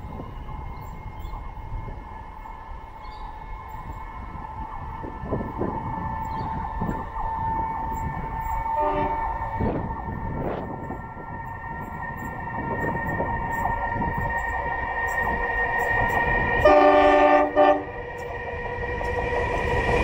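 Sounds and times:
freight train low rumble: 0.0 - 20.0.

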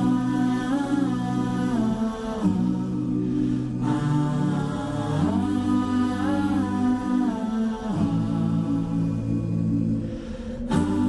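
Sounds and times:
voices humming held notes: 0.0 - 11.0.

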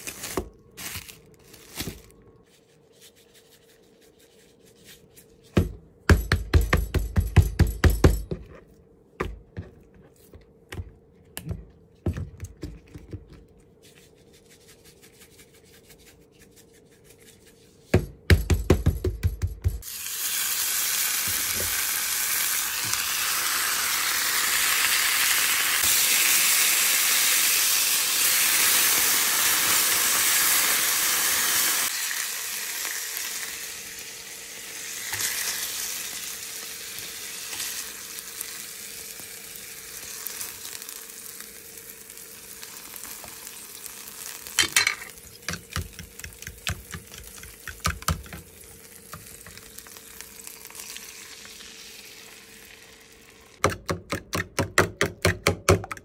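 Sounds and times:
food sizzling in hot pan: 19.8 - 45.2, 48.5 - 53.6.

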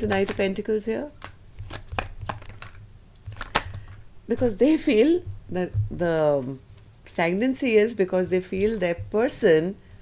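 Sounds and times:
cards being shuffled: 0.0 - 4.0
low steady hum: 0.0 - 10.0.

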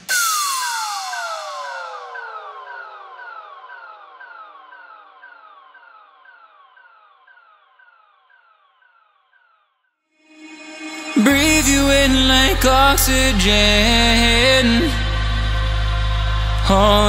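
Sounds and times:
echoing falling synth sweep: 0.0 - 9.5, 10.2 - 17.0.

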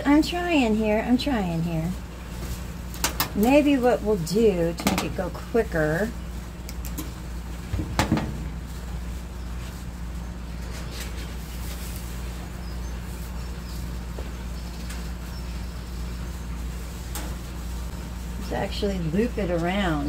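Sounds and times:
steady low hum: 0.0 - 20.0
dry moss rustling: 0.1 - 20.0.

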